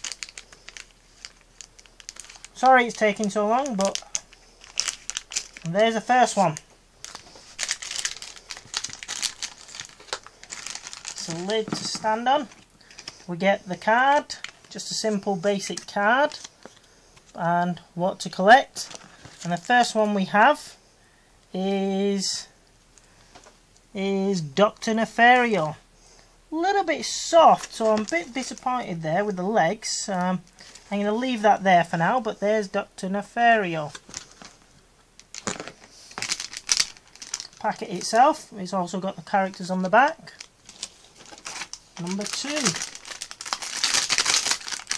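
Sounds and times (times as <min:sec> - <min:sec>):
plastic packet crinkling: 0:00.0 - 0:17.4, 0:18.7 - 0:20.0, 0:27.0 - 0:28.9, 0:33.8 - 0:34.6, 0:35.2 - 0:38.4, 0:39.2 - 0:44.9.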